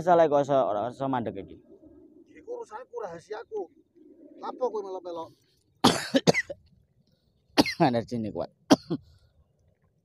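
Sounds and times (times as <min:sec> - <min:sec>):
person coughing hard: 0:05.8 - 0:06.6, 0:07.6 - 0:07.8, 0:08.7 - 0:09.0.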